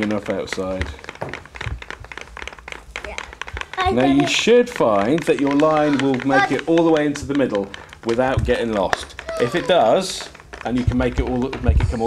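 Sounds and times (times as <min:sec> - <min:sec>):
pencils tapping on paper: 0:00.0 - 0:12.0.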